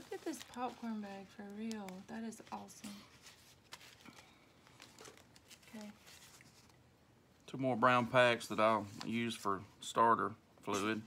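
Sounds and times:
paper envelopes crinkling: 0:00.0 - 0:06.8.

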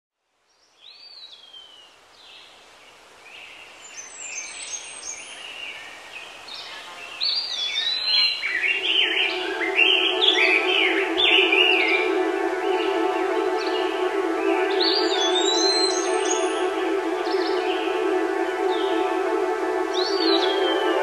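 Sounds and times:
birds chirping and singing: 0:04.0 - 0:21.0
ambient synthesizer chord: 0:08.1 - 0:21.0.

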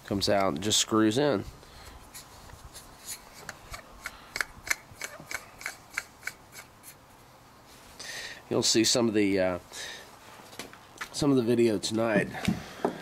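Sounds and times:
soft handling rubs: 0:01.4 - 0:03.8, 0:06.5 - 0:08.0
lens screwing clicks: 0:02.1 - 0:06.7.

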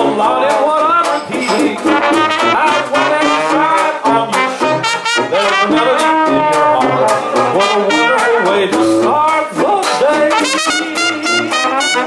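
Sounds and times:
banjo: 0:00.0 - 0:12.0
person singing: 0:00.0 - 0:12.0
tuba: 0:00.0 - 0:12.0
trombone: 0:01.0 - 0:12.0
trumpet: 0:01.4 - 0:09.4, 0:10.0 - 0:12.0.

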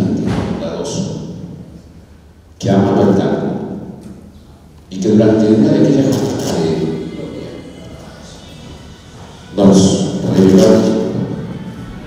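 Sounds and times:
man speaking into a microphone: 0:00.0 - 0:01.6, 0:02.6 - 0:04.2, 0:04.9 - 0:08.5, 0:09.5 - 0:11.5.

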